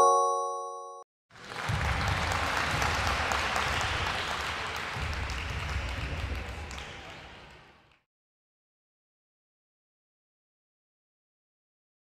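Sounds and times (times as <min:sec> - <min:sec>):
recorded applause: 0:01.3 - 0:08.1.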